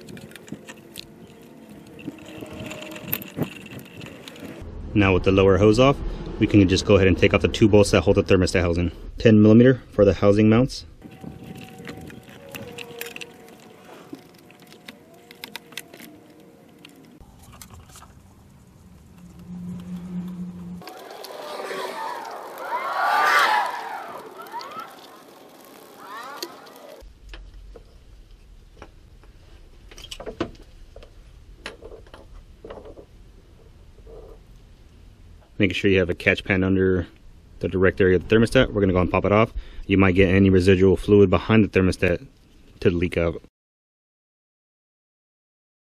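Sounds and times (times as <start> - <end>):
wavering gliding tones: 0.0 - 8.0, 18.4 - 27.0.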